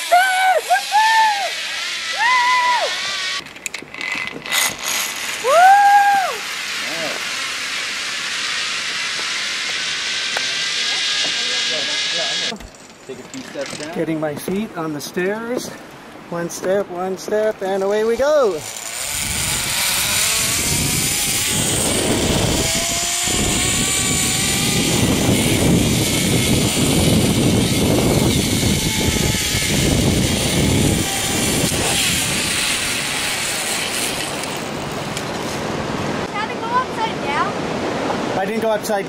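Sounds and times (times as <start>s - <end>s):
zipline trolley whirring on cable: 0.0s - 13.9s, 18.2s - 37.6s
steady rush of noise: 0.0s - 39.0s.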